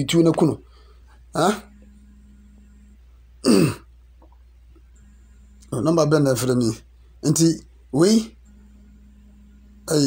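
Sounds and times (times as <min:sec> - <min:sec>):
faint low hum: 0:00.0 - 0:10.0
man clearing his throat: 0:03.4 - 0:03.9.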